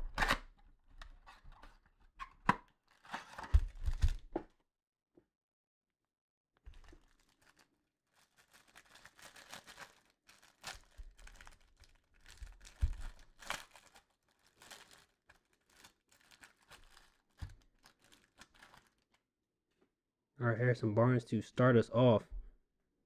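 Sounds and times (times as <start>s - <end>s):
plastic wrapper tearing and crinkling: 2.8s - 4.2s, 6.7s - 19.2s.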